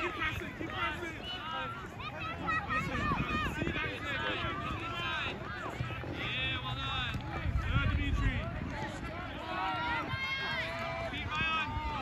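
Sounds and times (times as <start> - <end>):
wind rumble on microphone: 2.2 - 12.0
distant shouting voices: 8.8 - 12.0.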